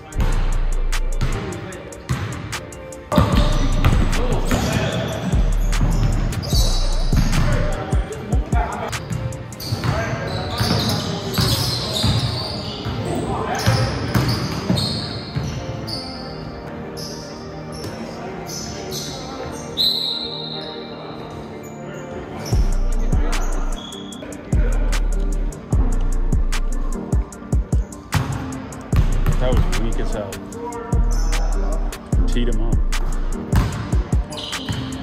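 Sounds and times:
players' voices: 0:00.0 - 0:35.0.

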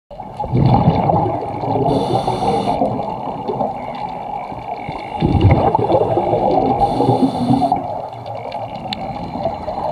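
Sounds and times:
bubbles gurgling from regulator: 0:00.2 - 0:09.9
regulator hiss: 0:01.9 - 0:02.8, 0:06.8 - 0:07.8.

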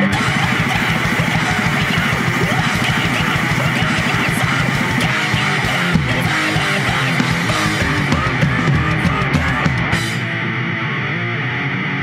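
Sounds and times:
fast drum beat: 0:00.0 - 0:10.3
distorted electric guitars: 0:00.0 - 0:12.0.

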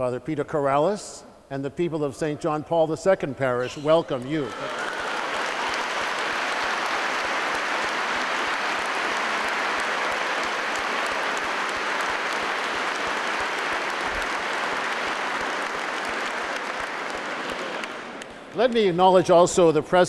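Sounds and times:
congregation applauding: 0:03.6 - 0:19.6.

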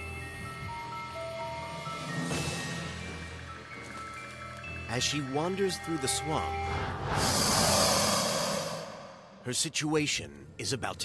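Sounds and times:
long breathy hiss: 0:07.2 - 0:09.4.

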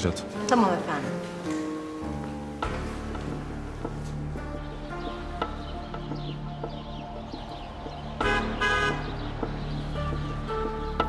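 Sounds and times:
car horn toots: 0:08.2 - 0:09.2.

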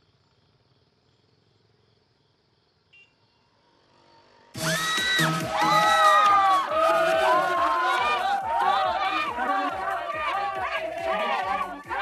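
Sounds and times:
faint short tone: 0:02.9 - 0:03.4
electronic dance music: 0:04.6 - 0:12.0.

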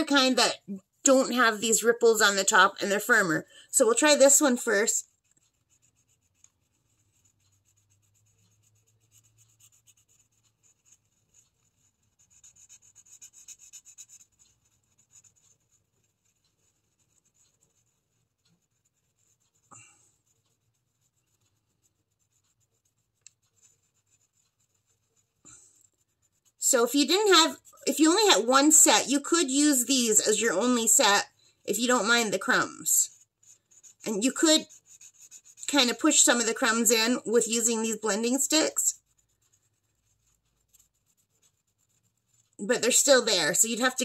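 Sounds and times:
paper stump rubbing on paper: 0:37.5 - 0:43.2.

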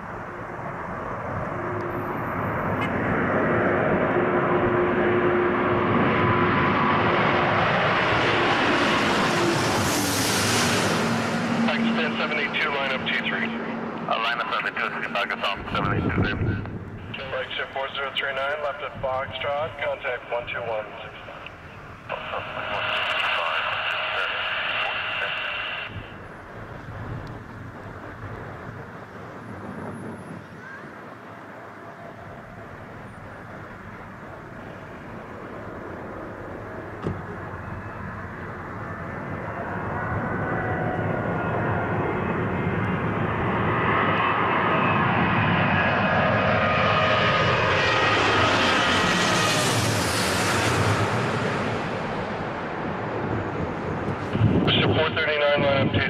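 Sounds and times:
jet engine roar overhead: 0:00.0 - 0:56.0
jet engine whine falling in pitch: 0:00.0 - 0:56.0.

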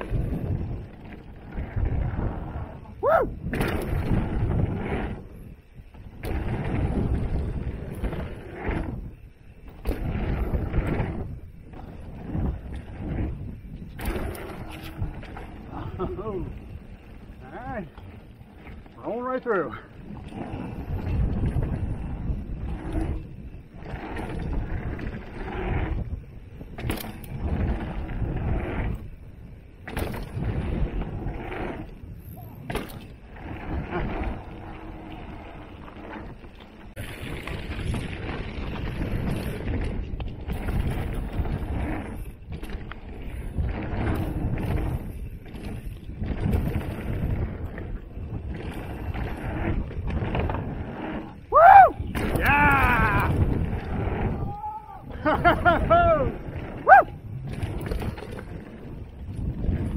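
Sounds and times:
wind on microphone: 0:00.0 - 0:18.9, 0:19.8 - 0:59.9
bike rattling over bumps: 0:00.0 - 0:59.9
bike tyres on dirt and gravel: 0:00.0 - 0:59.9
person whooping: 0:03.0 - 0:03.4, 0:51.5 - 0:53.5, 0:54.4 - 0:55.1, 0:55.8 - 0:57.2.

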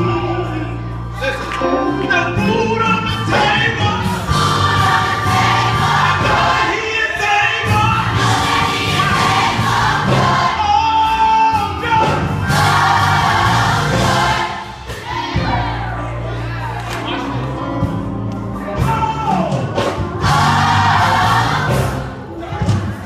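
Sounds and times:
children's choir singing: 0:04.0 - 0:11.2, 0:12.0 - 0:17.3, 0:20.1 - 0:23.0.

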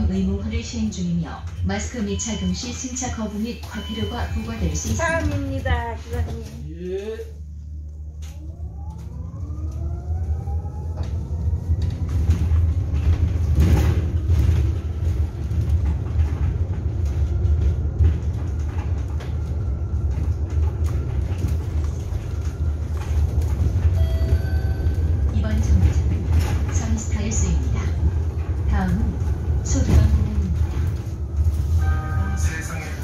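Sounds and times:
road rumble: 0:04.4 - 0:33.0.

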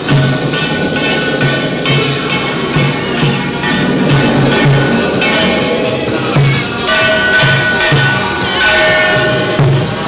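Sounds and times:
bronze gong ringing: 0:00.0 - 0:10.0
large drum beats: 0:00.0 - 0:10.0
metal percussion crashes: 0:00.0 - 0:10.0.

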